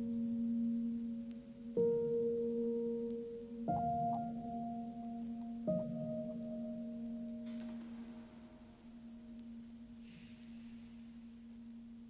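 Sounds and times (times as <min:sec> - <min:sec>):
faint soft hiss: 0:00.0 - 0:12.0
slow ambient piano chord: 0:00.0 - 0:12.0.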